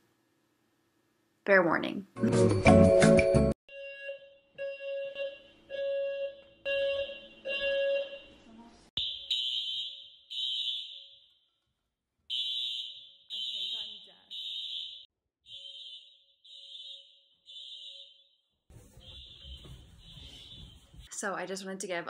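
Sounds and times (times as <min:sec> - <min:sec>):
pulsing fire alarm: 0:03.7 - 0:08.4, 0:09.0 - 0:11.3, 0:12.3 - 0:21.1
high-pitched buzzer blasts: 0:12.3 - 0:18.2.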